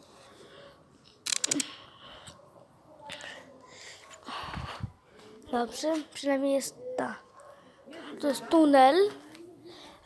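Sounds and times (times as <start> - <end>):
rattle of rapid clicks: 1.2 - 1.7.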